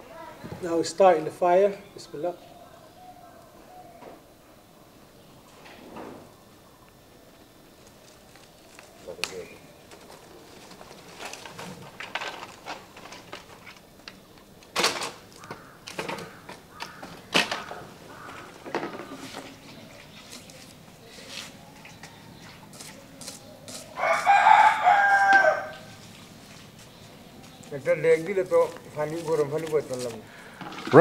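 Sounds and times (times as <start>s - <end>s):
wood fire crackling: 6.8s - 21.2s, 24.0s - 31.0s.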